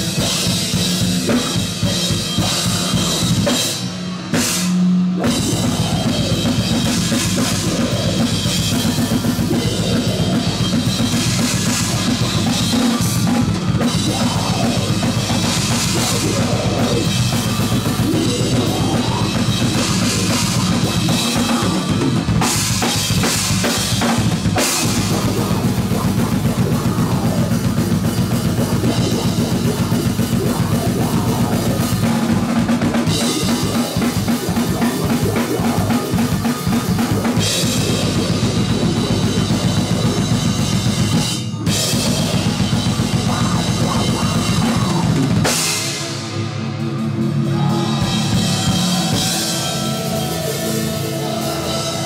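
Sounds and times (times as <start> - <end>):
death metal band playing live: 0.0 - 52.0.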